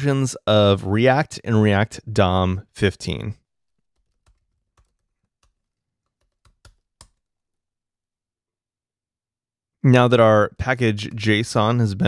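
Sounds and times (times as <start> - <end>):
computer keyboard keystrokes: 4.0 - 7.3.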